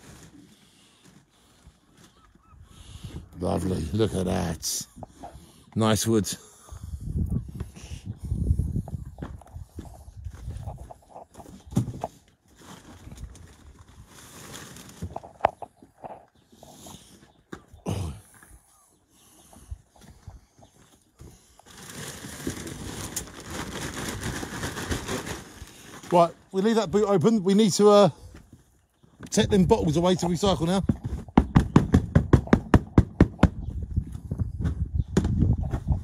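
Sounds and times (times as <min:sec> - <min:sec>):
plastic rustling: 0:00.0 - 0:02.2, 0:12.4 - 0:15.7, 0:21.6 - 0:26.9
wooden logs knocking: 0:30.4 - 0:33.8.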